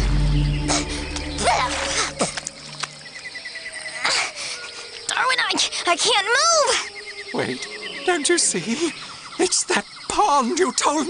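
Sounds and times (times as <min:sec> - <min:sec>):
held low music chord: 0:00.0 - 0:03.0
insect chirping: 0:00.0 - 0:11.0.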